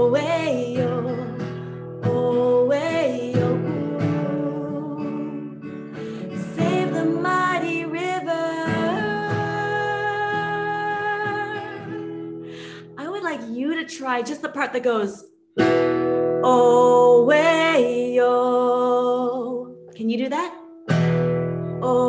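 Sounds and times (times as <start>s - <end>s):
strummed acoustic guitar: 0.0s - 12.5s, 15.6s - 18.0s, 20.8s - 22.0s
woman singing: 0.0s - 14.2s, 16.4s - 20.5s, 21.7s - 22.0s.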